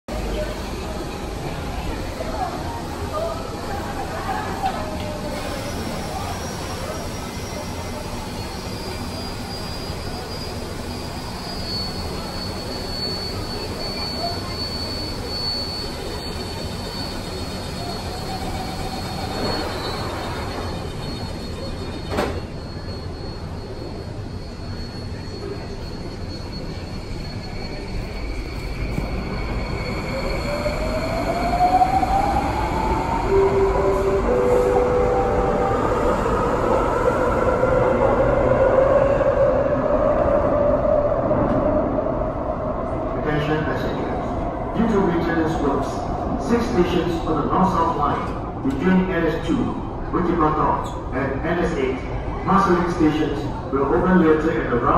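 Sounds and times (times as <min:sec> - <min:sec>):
metro train low hum: 0:00.1 - 0:54.9.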